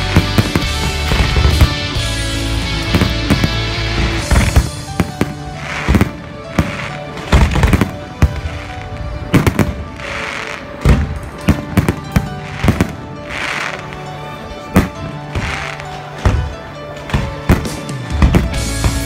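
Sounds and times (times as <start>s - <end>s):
fireworks bursting with sharp bangs: 0.0s - 19.0s
music playing: 0.0s - 19.0s.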